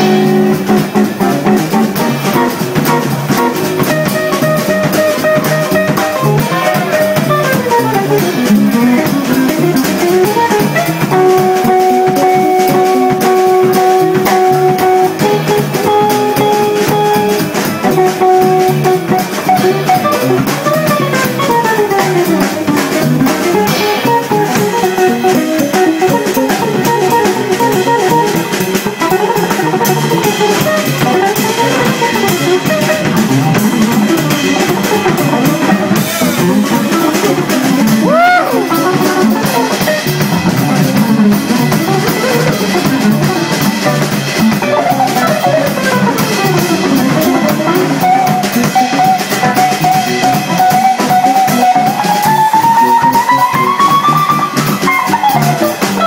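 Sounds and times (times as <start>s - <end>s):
bass: 0.0s - 56.0s
drum kit: 0.0s - 56.0s
electric guitar soloing: 0.0s - 56.0s.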